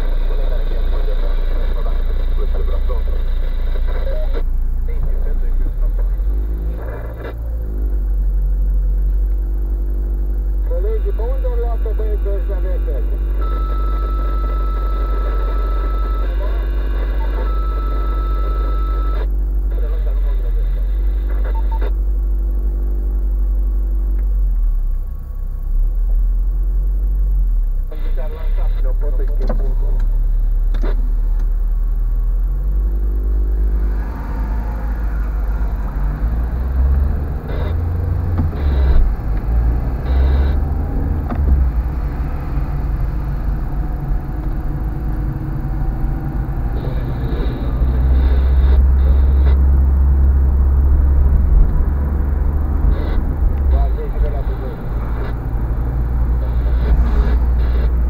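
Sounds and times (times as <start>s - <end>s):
car engine idling inside cabin: 0.0s - 58.0s
road noise: 0.0s - 58.0s.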